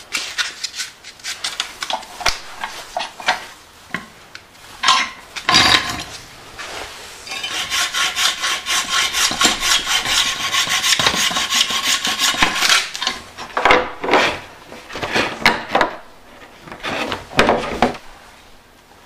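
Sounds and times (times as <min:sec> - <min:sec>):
hacksaw cutting plastic: 0:07.3 - 0:13.2.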